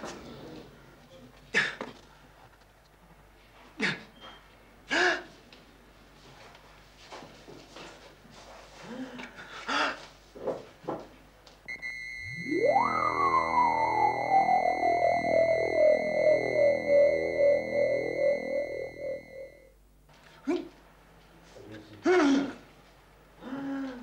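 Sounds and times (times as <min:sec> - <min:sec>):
steady high tone: 0:11.7 - 0:19.7
sustained synth chord: 0:11.7 - 0:19.7
theremin-like synth tone sweeping: 0:11.7 - 0:19.7.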